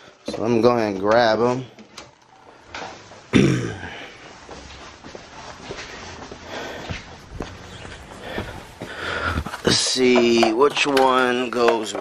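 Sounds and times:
footsteps: 0:00.1 - 0:11.9
rustle and knocks of handled parts: 0:08.8 - 0:12.0.

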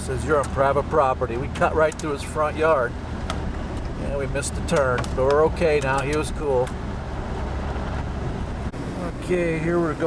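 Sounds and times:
vehicle rumbling on dirt road: 0:00.0 - 0:10.0.

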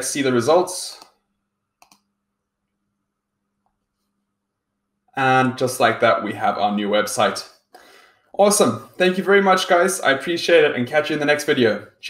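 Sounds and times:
computer mouse click: 0:01.8 - 0:02.1.

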